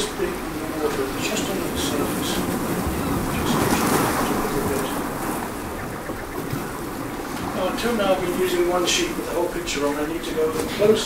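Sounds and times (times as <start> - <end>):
rushing noise: 1.7 - 8.5.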